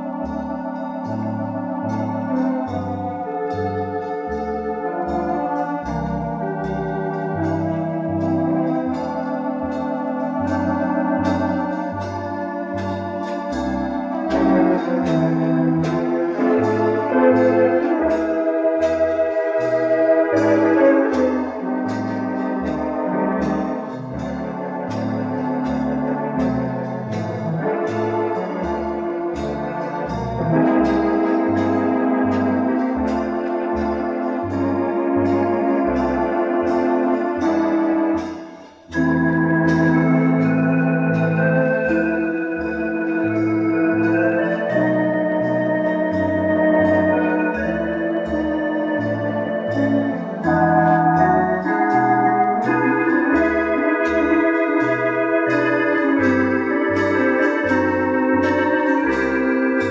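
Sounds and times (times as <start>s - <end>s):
electronic organ playing a ballad: 0.0s - 59.9s.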